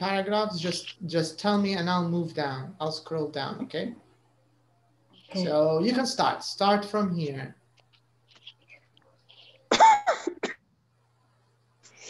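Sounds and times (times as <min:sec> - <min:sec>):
person clearing throat: 0:09.7 - 0:10.6.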